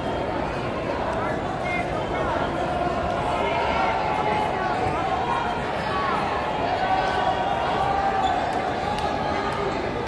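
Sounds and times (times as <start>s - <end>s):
crowd of voices in a hall: 0.0s - 10.0s.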